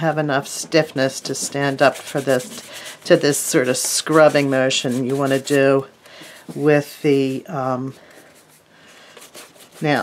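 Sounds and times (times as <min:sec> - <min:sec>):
brush scratching on palette: 0:01.2 - 0:06.8, 0:08.2 - 0:10.0.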